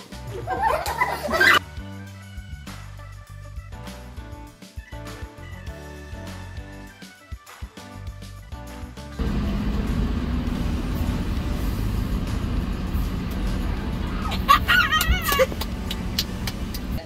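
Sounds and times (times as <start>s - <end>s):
car engine idling: 9.2s - 17.0s.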